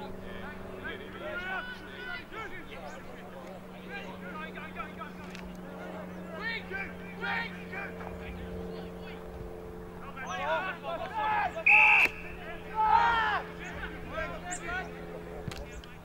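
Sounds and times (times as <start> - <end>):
players shouting: 0.0 - 9.3, 10.0 - 16.0
steady low hum: 0.0 - 16.0
umpire's whistle blast: 11.6 - 12.4.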